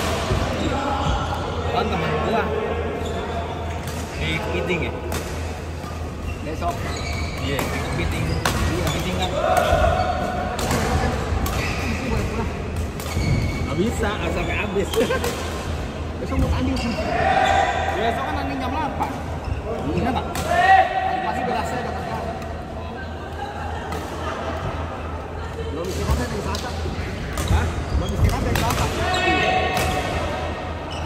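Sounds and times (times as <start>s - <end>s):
shoe squeak on floor: 5.8s - 9.4s, 11.6s - 12.2s, 13.1s - 15.1s, 16.5s - 17.7s, 27.4s - 28.5s.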